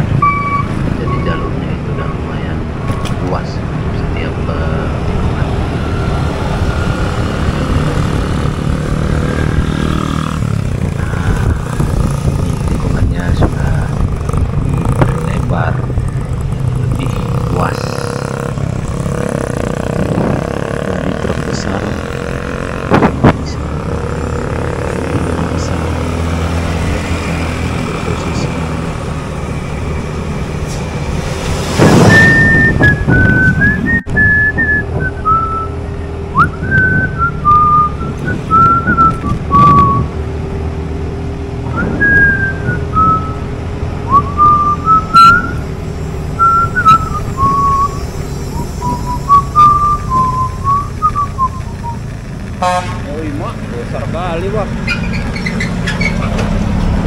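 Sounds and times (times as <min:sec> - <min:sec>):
wind on microphone: 0:05.2 - 0:16.5, 0:18.6 - 0:22.0, 0:22.6 - 0:23.4, 0:30.8 - 0:35.7, 0:36.3 - 0:40.3, 0:41.6 - 0:45.8
motorcycle engine running: 0:06.9 - 0:26.2
person whistling a tune: 0:32.0 - 0:35.8, 0:36.4 - 0:40.1, 0:41.7 - 0:43.4, 0:44.1 - 0:45.6, 0:46.4 - 0:52.0.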